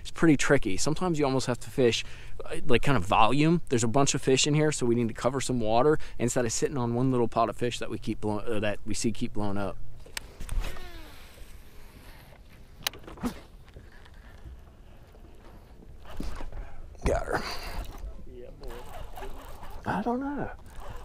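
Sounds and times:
reel spool whirring: 10.5 - 16.6, 17.8 - 21.0
fishing reel clicks: 20.6 - 21.0.

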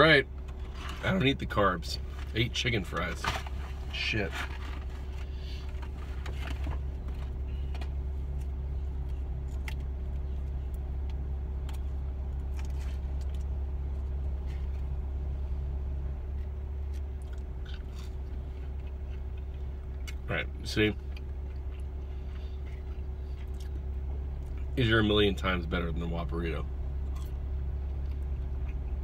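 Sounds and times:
vehicle idling inside cabin: 0.0 - 29.0.

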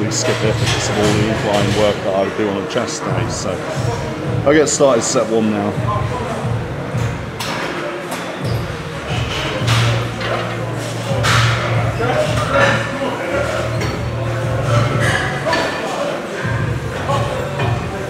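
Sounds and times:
people talking: 0.0 - 18.0.

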